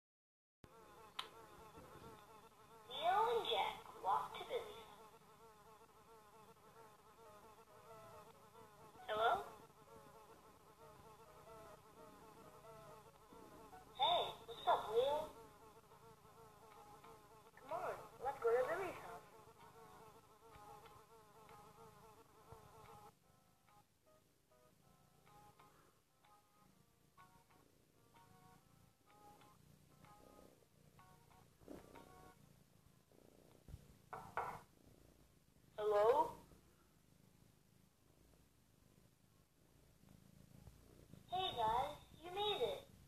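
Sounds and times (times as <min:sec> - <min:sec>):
insect-like buzzing drone: 0:00.7 - 0:24.2, 0:25.1 - 0:32.4.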